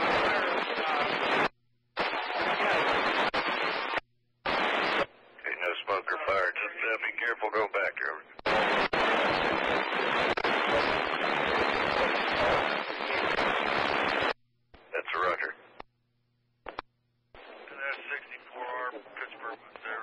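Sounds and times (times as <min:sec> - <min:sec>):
radio static hiss: 0:00.0 - 0:15.9, 0:16.7 - 0:20.0
garbled radio voice: 0:05.4 - 0:08.4, 0:14.9 - 0:15.6, 0:17.7 - 0:20.0.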